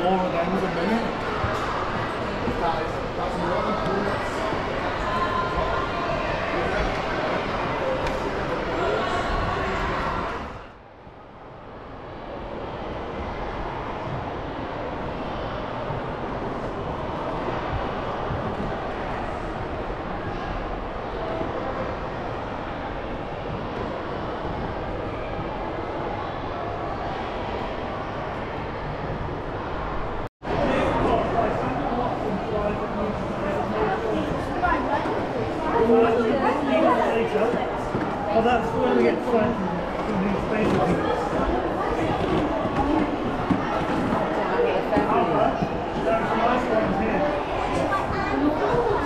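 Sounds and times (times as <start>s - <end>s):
echoing hall noise: 0.0s - 49.0s
indistinct chatter: 0.0s - 49.0s.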